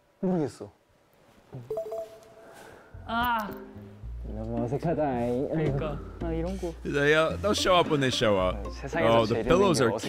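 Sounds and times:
short electronic beep: 1.7 - 2.5.

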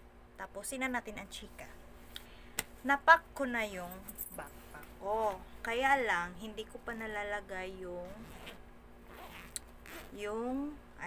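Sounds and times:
backpack zipper: 8.0 - 10.2.

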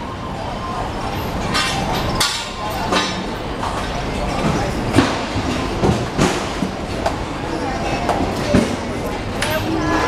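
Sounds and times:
street hubbub with voices: 0.0 - 10.0.

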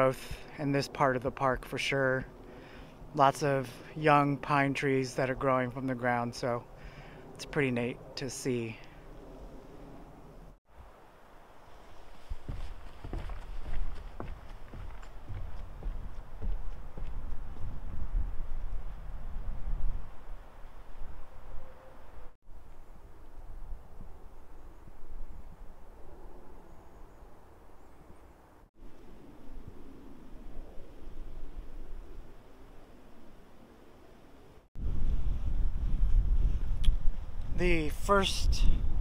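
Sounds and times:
open-air hiss: 10.1 - 15.4, 27.0 - 38.6
wind buffeting microphone: 12.2 - 21.5, 34.8 - 39.0.

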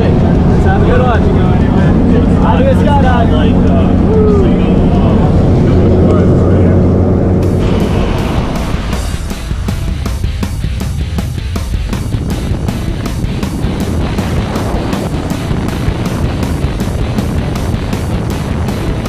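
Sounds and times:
aircraft engine and propeller drone: 0.0 - 19.0
music: 7.4 - 19.0
sharp ticking beat: 7.4 - 19.0.

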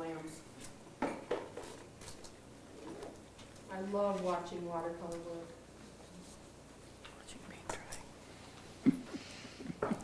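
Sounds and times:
soft whispering voices: 7.0 - 8.3.

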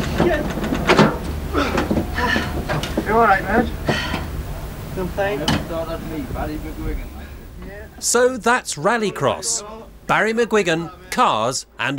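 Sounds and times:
low steady rumble: 0.0 - 11.9
indistinct voices speaking: 1.4 - 11.9.

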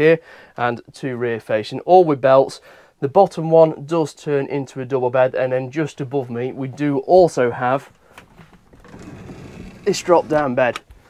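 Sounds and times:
bed mechanism sliding: 8.0 - 10.8.

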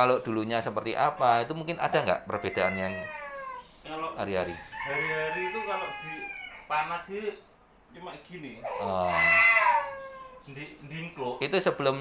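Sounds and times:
child whining cry: 2.4 - 3.6, 8.6 - 10.4.

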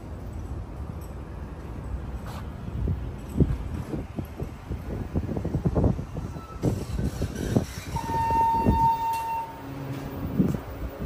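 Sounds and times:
elevator rumble: 0.0 - 11.0.

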